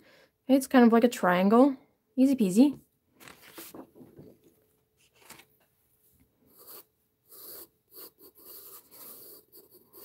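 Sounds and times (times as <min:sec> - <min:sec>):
pencil scratching on paper: 0:06.4 - 0:10.0.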